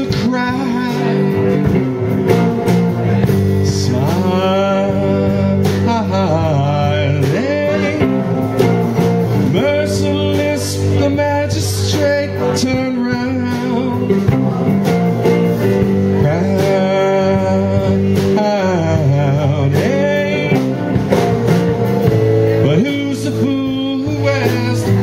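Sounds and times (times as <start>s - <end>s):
bass guitar: 0.0s - 25.0s
drum beat: 0.0s - 25.0s
electric guitar: 0.0s - 25.0s.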